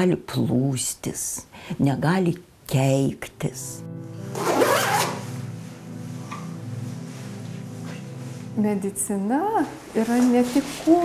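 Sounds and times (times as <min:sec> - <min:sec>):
jacket zip pulled up: 0:04.3 - 0:05.3.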